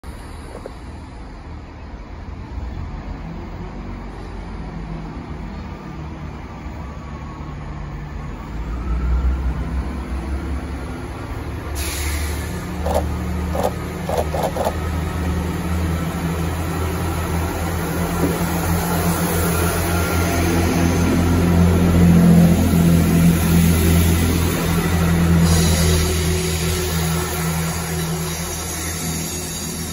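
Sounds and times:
diesel train engine rumble: 9.4 - 29.9.

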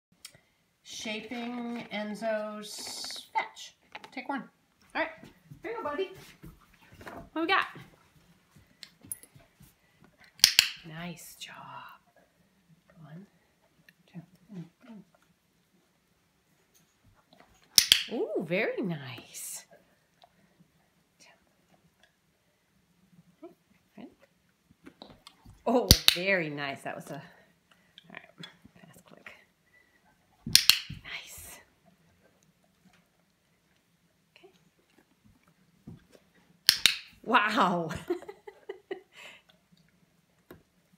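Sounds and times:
dog-training clicker clicking: 10.4 - 10.8, 17.8 - 18.1, 36.7 - 37.1.

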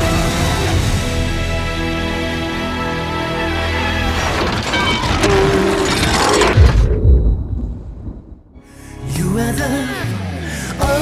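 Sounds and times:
trailer music: 0.0 - 10.9
glass shattering: 4.2 - 6.8
low rumble: 4.8 - 9.2
deep boom: 6.4 - 8.7.

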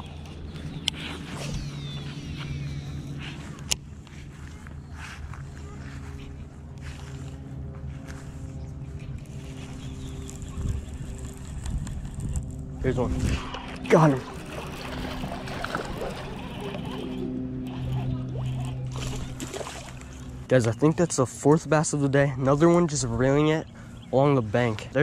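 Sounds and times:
spool whine paying out line: 0.0 - 24.7
steady low hum: 0.0 - 25.0
reel handle cranking: 9.2 - 20.2.

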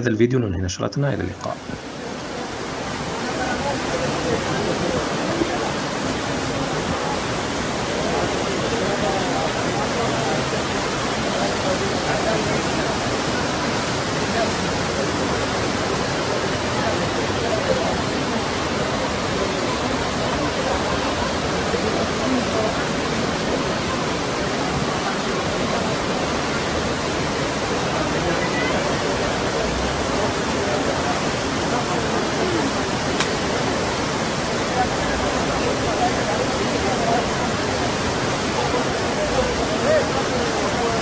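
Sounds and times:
faint voices: 0.0 - 41.0
floodwater rushing: 0.0 - 41.0.

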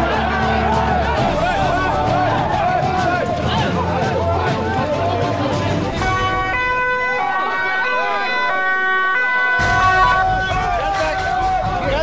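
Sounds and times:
voices shouting: 0.0 - 12.0
two-tone siren: 6.0 - 11.4.

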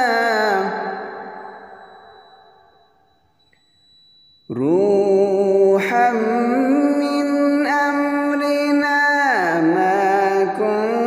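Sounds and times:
man reciting melodic chant: 0.0 - 1.3, 4.5 - 11.0.

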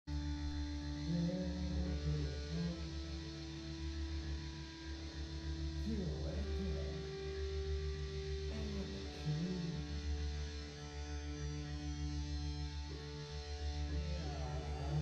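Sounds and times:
droning electric guitar chord: 0.1 - 15.0.

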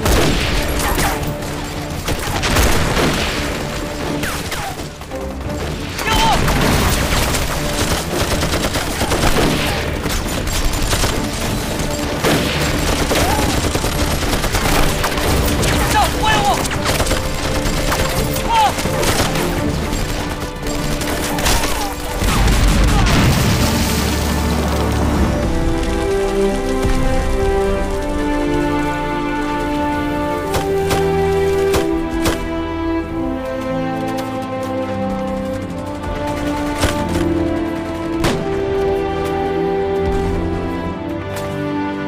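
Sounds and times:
explosions: 22.1 - 28.0
heavy explosion rumbling: 22.1 - 28.3.

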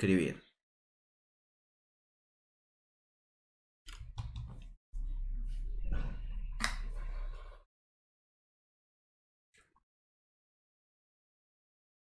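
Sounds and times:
low hum: 5.0 - 7.6.

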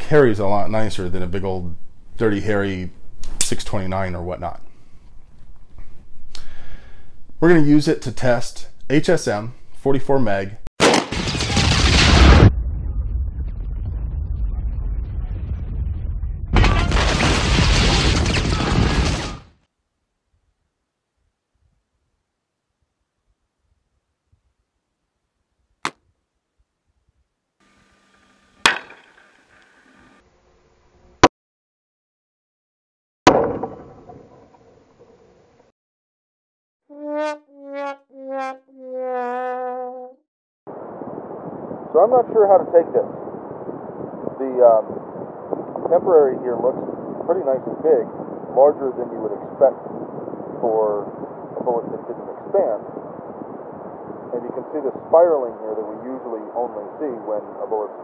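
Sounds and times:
loud booming blasts: 10.8 - 19.4
low rumble: 12.0 - 17.0
sad trombone sound effect: 36.9 - 40.1
wind noise on microphone: 40.7 - 55.2.

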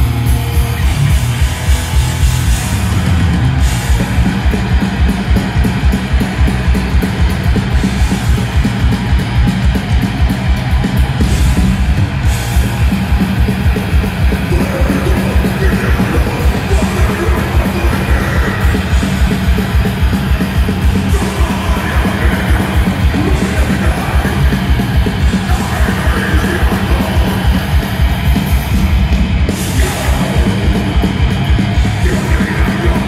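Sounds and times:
distorted guitars and bass: 0.0 - 33.0
fast pounding drums: 0.0 - 33.0.

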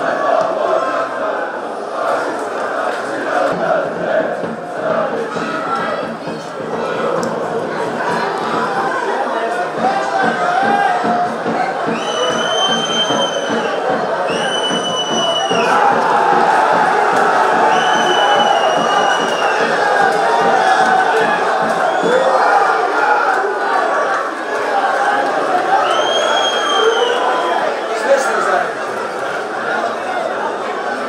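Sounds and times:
stadium crowd noise: 0.0 - 31.0
whistle blasts: 11.9 - 15.7, 17.7 - 19.6, 25.8 - 27.6.

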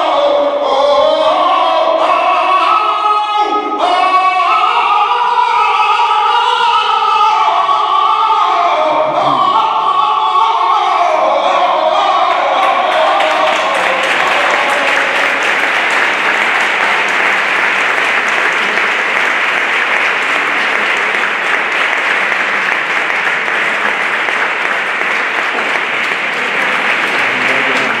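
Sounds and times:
person singing: 0.0 - 15.5, 26.4 - 28.0
audience applauding: 12.2 - 28.0.

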